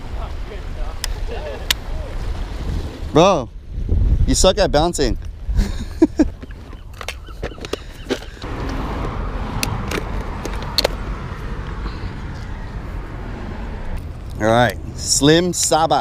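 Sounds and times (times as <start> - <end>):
road traffic noise: 6.2 - 16.0.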